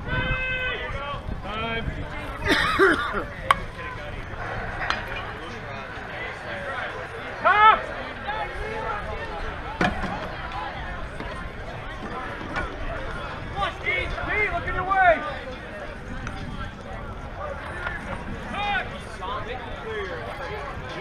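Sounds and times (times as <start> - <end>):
players shouting calls: 0.0 - 1.6, 2.2 - 11.7.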